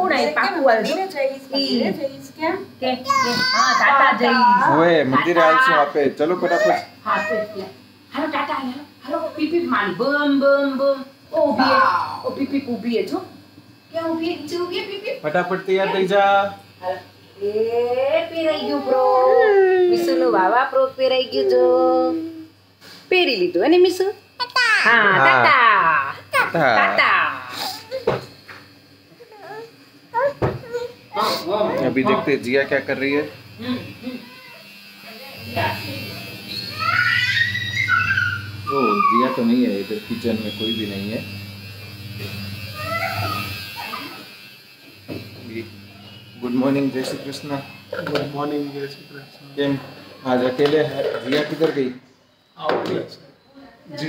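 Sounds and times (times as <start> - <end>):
low electrical buzz: 0.0 - 54.0
baby crying: 6.3 - 7.7, 36.7 - 39.6.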